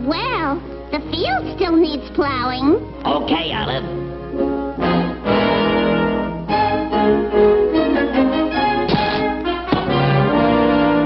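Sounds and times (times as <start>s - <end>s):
orchestral brass chords: 2.8s - 11.0s.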